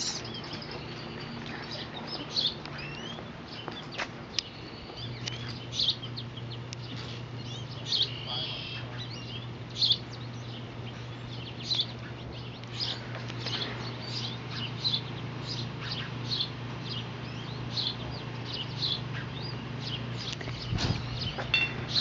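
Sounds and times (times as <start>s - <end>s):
birds chirping: 0.0s - 22.0s
steady low hum: 0.0s - 22.0s.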